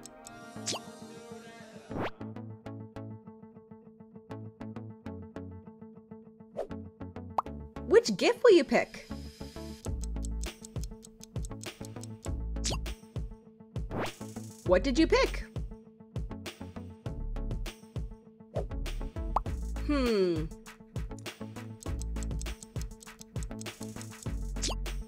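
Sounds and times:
background music with beat: 9.8s - 14.6s, 18.7s - 25.0s.

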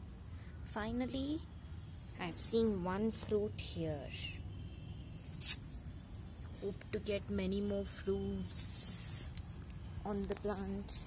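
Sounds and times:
low outdoor rumble: 0.0s - 11.0s
high-pitched chirps: 5.1s - 7.4s.

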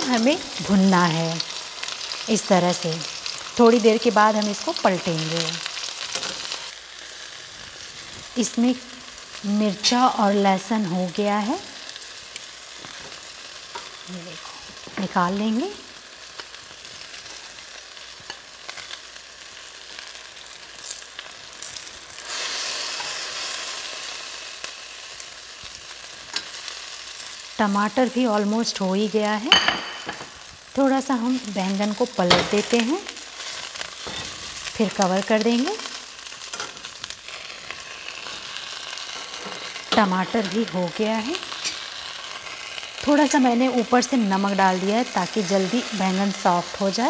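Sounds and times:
vegetables sizzling in hot oil: 0.0s - 47.0s.

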